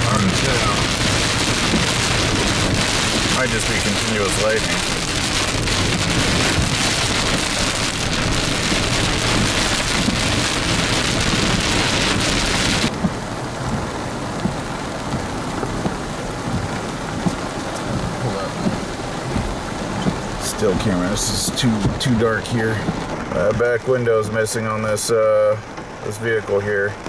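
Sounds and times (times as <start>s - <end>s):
heavy rain on a vehicle: 0.0s - 27.0s
light rain: 0.0s - 27.0s
raindrop ticks: 0.0s - 27.0s.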